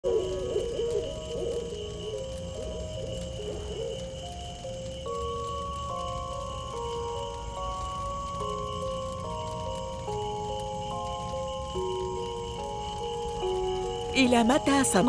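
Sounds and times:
owl hooting: 0.0s - 4.9s
soft music of held notes: 0.0s - 15.0s.

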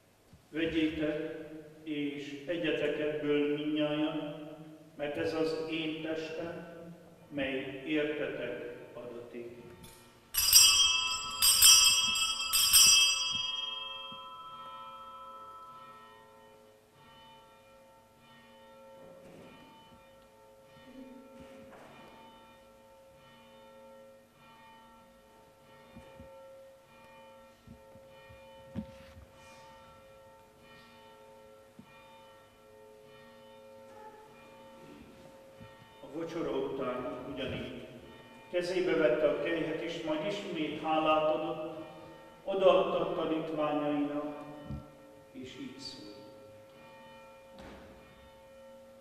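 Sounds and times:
bells ringing: 9.3s - 49.0s
lingering low bell tone: 9.6s - 31.6s.

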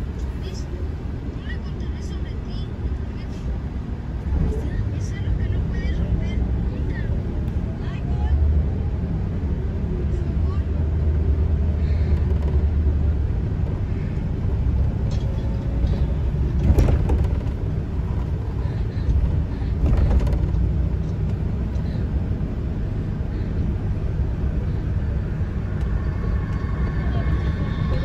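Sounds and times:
vehicle road rumble from inside: 0.0s - 28.0s.

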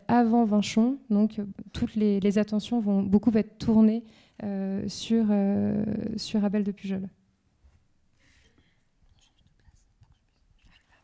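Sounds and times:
faint whispering: 8.4s - 11.0s.

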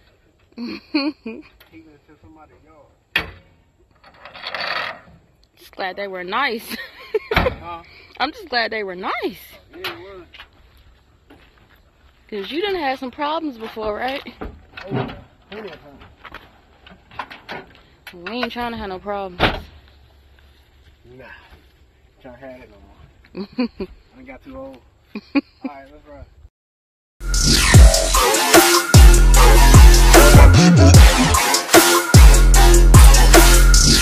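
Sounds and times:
metal door slamming: 3.1s - 3.5s.

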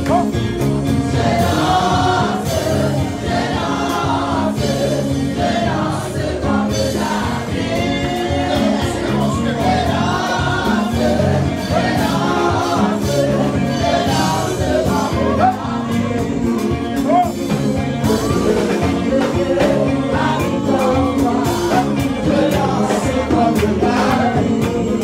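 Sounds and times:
choir singing gospel music: 0.0s - 25.0s.

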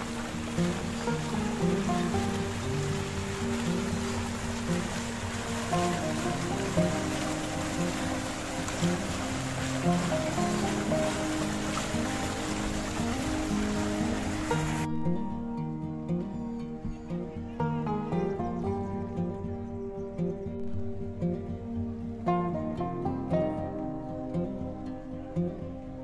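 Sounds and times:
fountain water splashing: 0.0s - 14.9s
background music: 0.0s - 26.0s.

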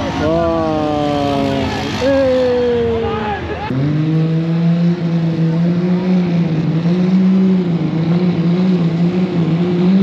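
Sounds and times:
motorcycle engine at high revs: 0.0s - 10.0s.

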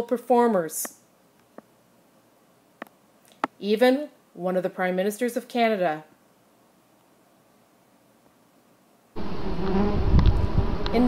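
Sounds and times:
low rumble: 9.2s - 11.0s
wasps buzzing: 9.2s - 11.0s.

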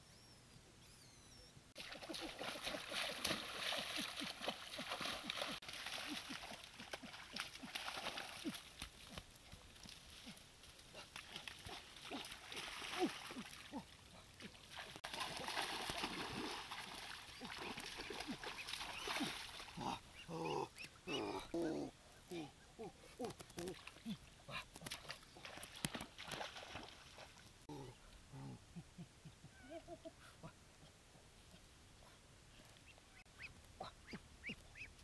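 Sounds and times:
splashing through muddy water: 1.8s - 27.9s.

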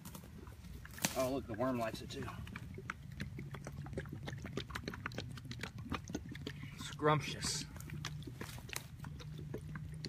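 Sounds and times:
dry leaves crackling: 0.0s - 2.5s
low steady hum: 0.0s - 10.0s.

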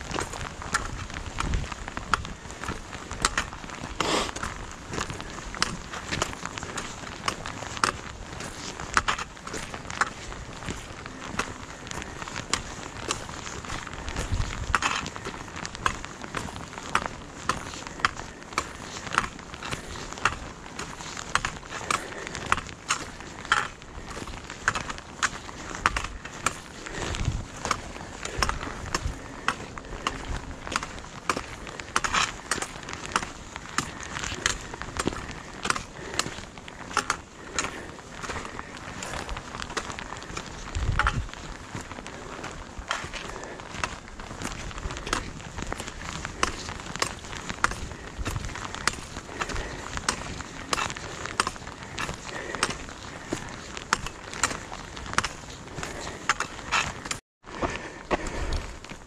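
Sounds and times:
trekking poles striking rock: 0.0s - 57.2s
footsteps on gravel trail: 0.0s - 59.0s.

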